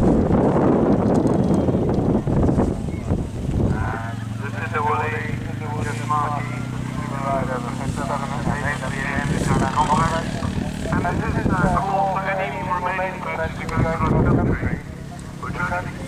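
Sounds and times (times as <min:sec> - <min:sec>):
low engine drone: 0:00.0 - 0:16.0
indistinct talking: 0:03.7 - 0:16.0.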